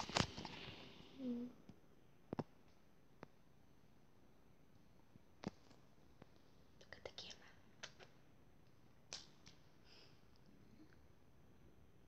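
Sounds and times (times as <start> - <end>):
faint whispered hisses: 6.4 - 8.1.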